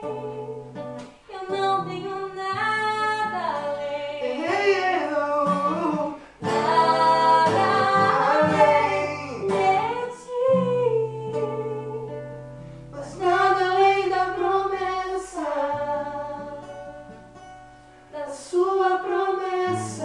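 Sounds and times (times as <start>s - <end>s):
man and woman singing: 0.0s - 17.1s, 18.1s - 20.0s
acoustic guitar: 0.0s - 20.0s.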